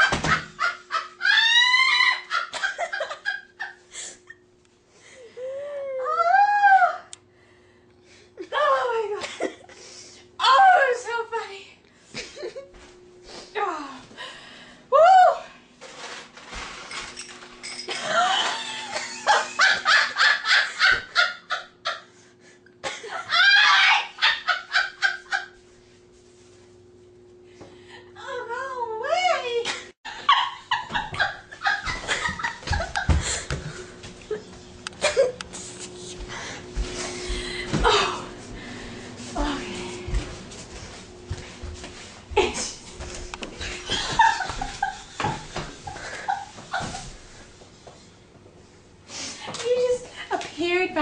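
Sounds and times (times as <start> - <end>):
person laughing: 0.0 - 4.4, 18.0 - 22.1, 30.1 - 35.6, 43.6 - 47.1.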